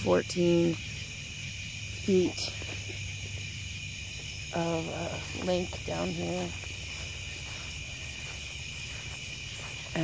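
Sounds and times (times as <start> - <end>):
night insects trilling: 0.0 - 10.0.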